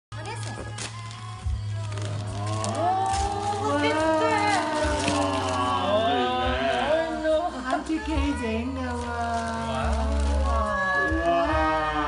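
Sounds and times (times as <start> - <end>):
wrapping paper tearing and rustling: 0.2 - 12.0.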